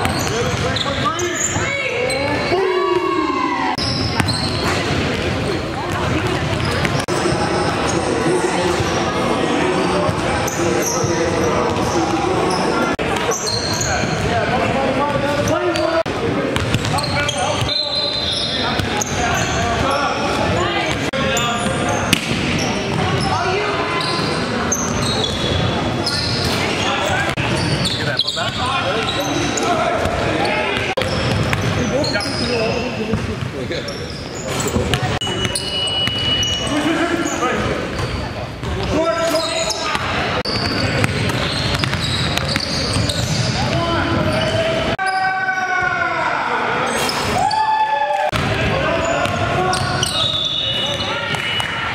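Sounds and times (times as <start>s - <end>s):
basketball bouncing on court: 0.0s - 1.6s, 3.8s - 7.1s, 16.5s - 17.7s, 30.8s - 31.9s, 33.1s - 33.6s, 34.7s - 36.4s, 39.9s - 44.4s
players calling out: 0.0s - 51.9s
high-pitched squeak: 33.9s - 38.4s.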